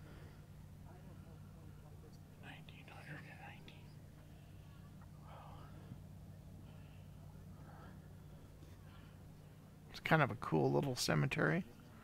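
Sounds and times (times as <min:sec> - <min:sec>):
low steady hum: 0:00.0 - 0:12.0
person whispering: 0:02.4 - 0:04.0.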